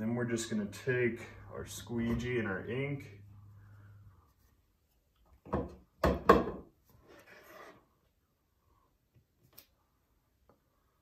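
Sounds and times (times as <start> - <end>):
sharp wooden knocks: 5.5 - 6.6.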